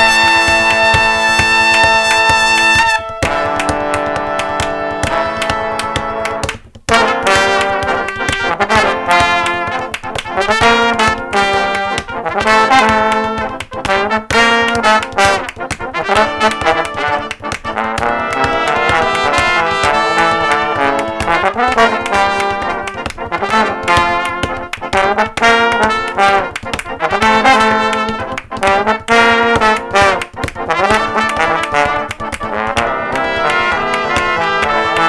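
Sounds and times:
brass section playing: 0:00.0 - 0:35.0.

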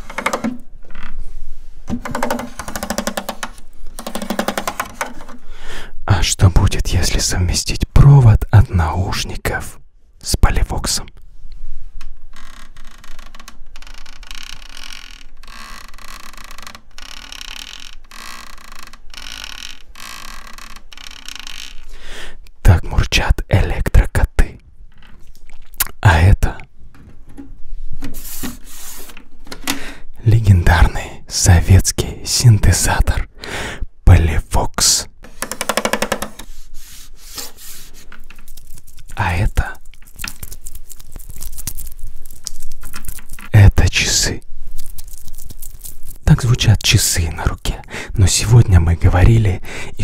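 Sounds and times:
scraping and rubbing on microphone: 0:27.5 - 0:29.4, 0:35.2 - 0:49.6.

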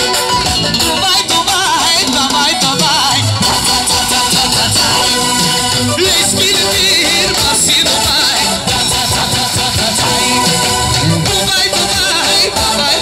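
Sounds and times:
live band dance music: 0:00.0 - 0:13.0
person singing: 0:00.0 - 0:13.0.

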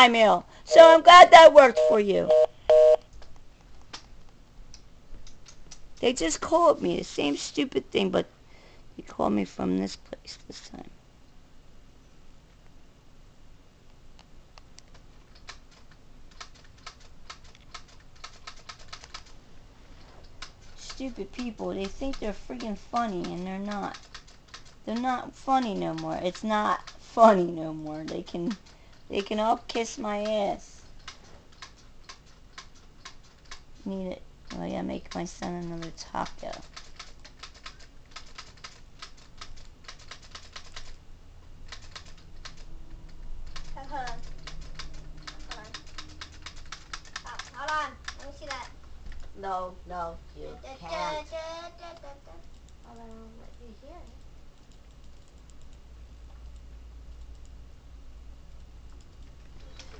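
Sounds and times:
typing on computer keyboard: 0:14.8 - 0:19.3, 0:20.4 - 0:27.0, 0:31.0 - 0:33.6, 0:34.5 - 0:41.0, 0:41.7 - 0:42.7, 0:43.4 - 0:48.6.

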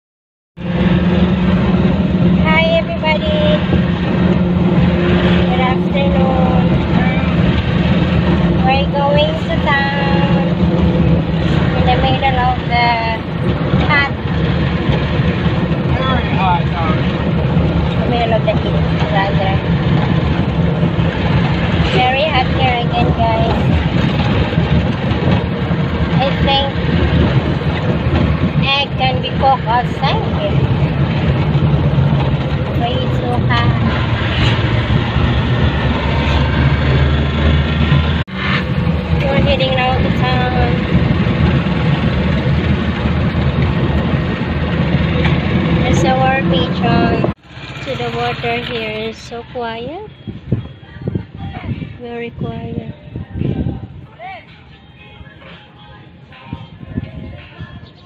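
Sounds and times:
road noise: 0:00.6 - 0:58.0
vehicle engine drone: 0:00.6 - 0:58.0
people talking indistinctly: 0:02.4 - 0:03.8, 0:05.4 - 0:07.5, 0:08.5 - 0:10.6, 0:11.6 - 0:14.2, 0:15.8 - 0:19.8, 0:21.8 - 0:23.9, 0:26.0 - 0:26.8, 0:28.5 - 0:30.9, 0:32.6 - 0:34.0, 0:39.2 - 0:40.9, 0:45.8 - 0:58.0.

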